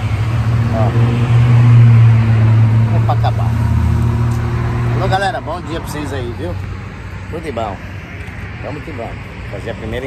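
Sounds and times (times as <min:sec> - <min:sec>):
vehicle engine droning: 0:00.0 - 0:10.0.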